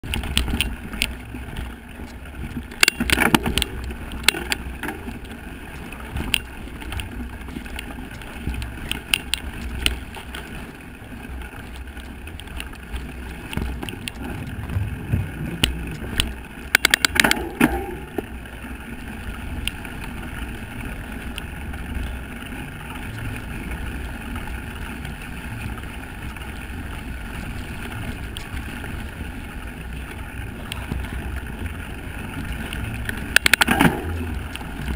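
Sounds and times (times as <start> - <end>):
bike rattling clicks: 0.0 - 34.9
wind and ground rumble: 0.0 - 34.9.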